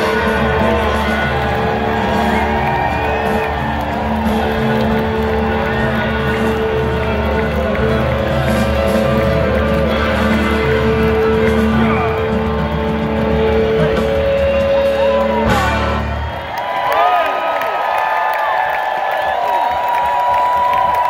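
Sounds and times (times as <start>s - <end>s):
live rock band playing: 0.0s - 16.5s.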